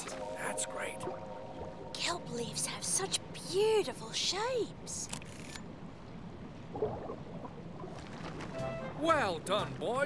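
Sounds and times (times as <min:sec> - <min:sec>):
soft background music: 0:00.0 - 0:03.6, 0:08.5 - 0:10.0
low underwater wash: 0:06.0 - 0:09.0.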